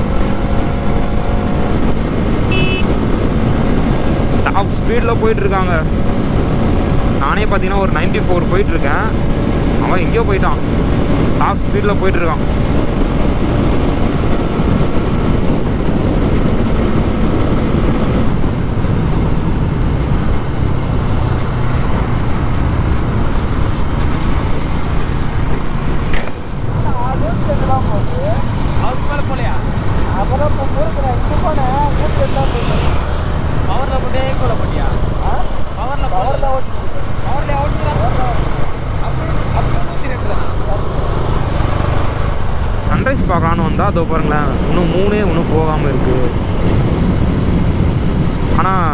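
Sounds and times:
motorcycle engine at speed: 0:00.0 - 0:48.9
wind rushing over microphone: 0:00.0 - 0:48.9.

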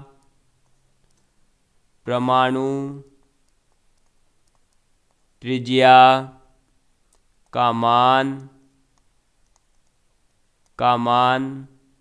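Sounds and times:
stylus tapping on pen tablet: 0:03.4 - 0:05.3.

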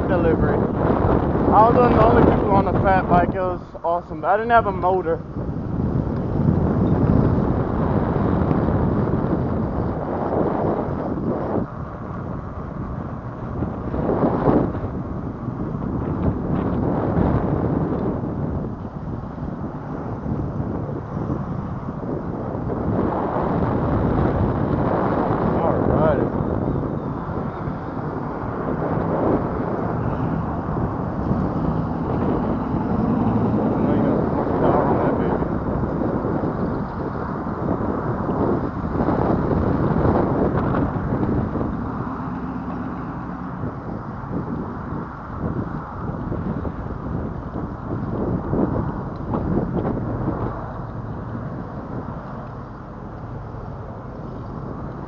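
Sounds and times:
bicycle tyres rumbling on asphalt: 0:00.0 - 0:55.0
wind buffeting microphone: 0:00.0 - 0:55.0.

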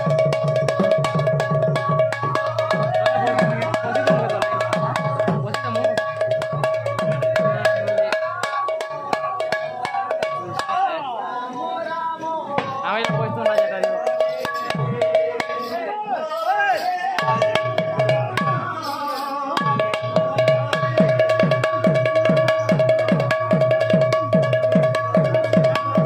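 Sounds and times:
hand drum in quick rhythm: 0:00.0 - 0:10.8, 0:19.6 - 0:26.0
person singing: 0:14.0 - 0:21.9.

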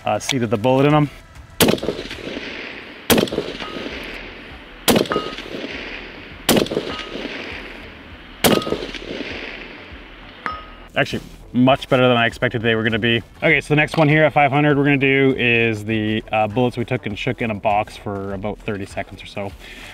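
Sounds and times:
rifle shots: 0:01.6 - 0:10.9
bullet ringing on steel target: 0:03.2 - 0:04.3, 0:04.9 - 0:07.5, 0:08.4 - 0:09.5, 0:10.4 - 0:10.9.

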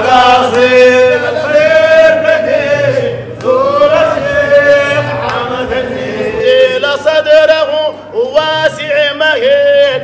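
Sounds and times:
men chanting together: 0:00.0 - 0:07.1.

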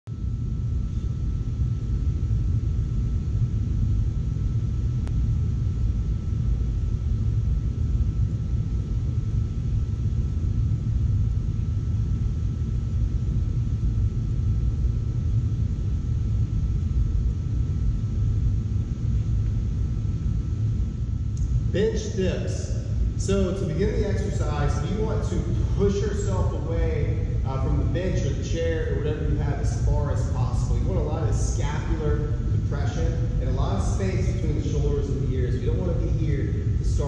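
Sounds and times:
low background rumble: 0:00.0 - 0:37.0.

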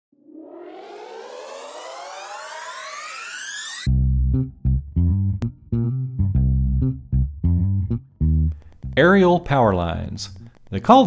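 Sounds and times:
rising electronic sweep: 0:00.1 - 0:04.0
bass and guitar music: 0:03.9 - 0:11.0.

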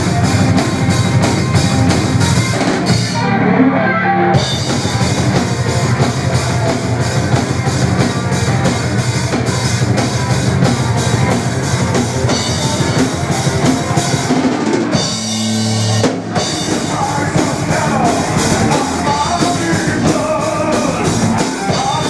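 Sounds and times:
fast drumming: 0:00.0 - 0:03.2, 0:04.4 - 0:22.0
distorted electric guitar: 0:00.0 - 0:22.0
metal band playing live: 0:00.0 - 0:22.0.

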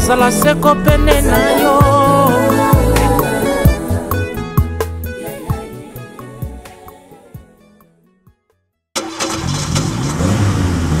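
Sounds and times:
suv engine starting and revving: 0:09.0 - 0:11.0.

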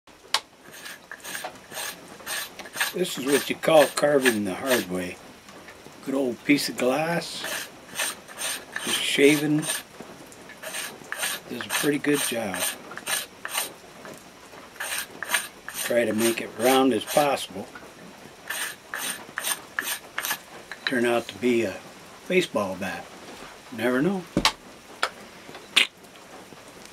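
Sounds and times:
glass scraping wooden stick: 0:00.7 - 0:04.9, 0:07.4 - 0:09.8, 0:10.6 - 0:13.7, 0:14.8 - 0:17.3, 0:18.5 - 0:21.0.

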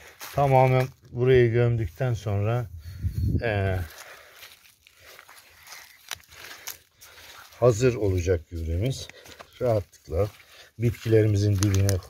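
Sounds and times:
gloved hands scraping dry soil: 0:00.0 - 0:02.6, 0:03.5 - 0:12.0.

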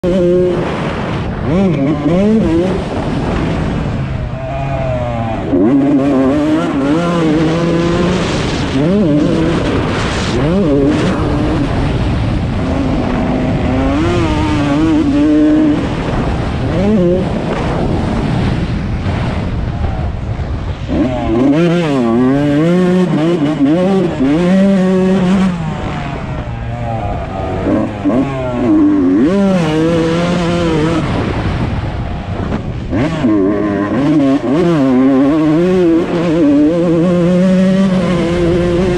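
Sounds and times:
motocross bike engine revving: 0:00.0 - 0:38.9.

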